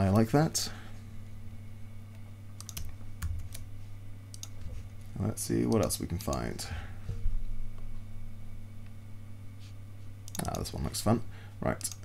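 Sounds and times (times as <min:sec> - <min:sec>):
low steady hum: 0:00.0 - 0:12.0
keyboard and mouse clicks: 0:02.6 - 0:03.6, 0:04.3 - 0:04.6, 0:05.7 - 0:06.4, 0:10.3 - 0:10.6, 0:11.8 - 0:12.0.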